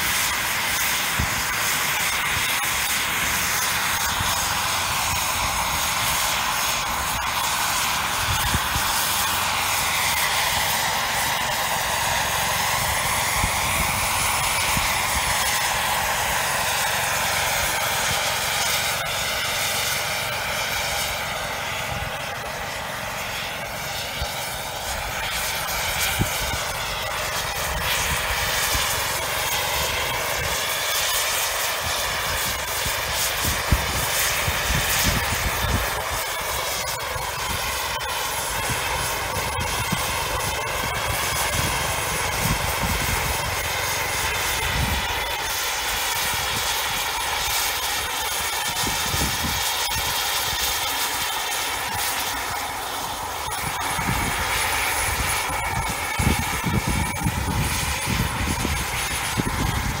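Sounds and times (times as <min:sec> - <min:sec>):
helicopter engine and rotor whine: 0:00.0 - 1:00.0
wind rumbling on microphone: 0:03.8 - 0:16.4, 0:24.9 - 0:30.8, 0:31.7 - 0:45.6, 0:48.6 - 0:50.6, 0:53.4 - 1:00.0.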